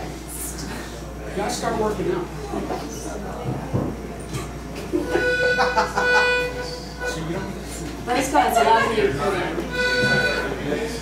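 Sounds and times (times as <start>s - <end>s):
people talking: 0.0s - 11.0s
people laughing: 4.8s - 6.9s, 8.2s - 10.6s
accordion holding a chord: 5.1s - 7.6s, 8.4s - 11.0s.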